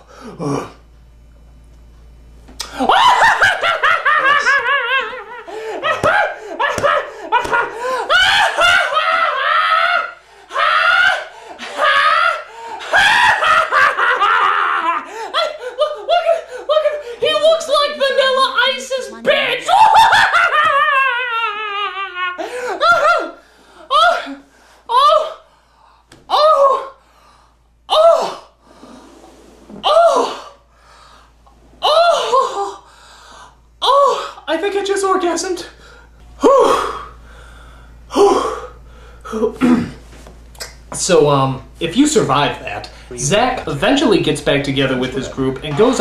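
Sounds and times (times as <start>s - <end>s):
man laughing hysterically: 2.8s - 17.2s, 19.3s - 25.2s
man wailing: 2.8s - 25.4s, 26.3s - 27.0s, 27.9s - 28.5s, 31.8s - 32.8s.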